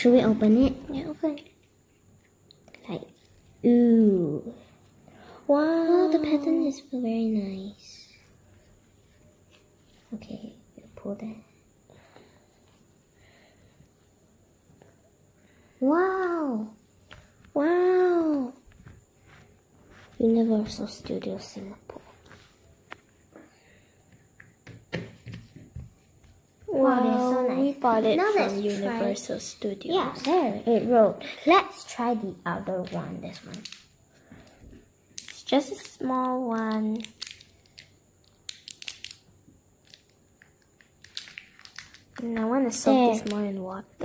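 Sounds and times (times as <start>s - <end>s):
plastic wrapper crinkling: 36.6s - 39.2s, 41.0s - 42.2s.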